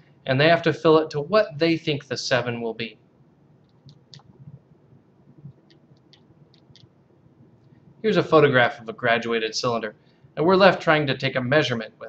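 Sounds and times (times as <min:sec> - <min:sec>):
faint low hum: 0:00.0 - 0:12.0
small faint clicks: 0:03.6 - 0:04.6, 0:05.4 - 0:07.0.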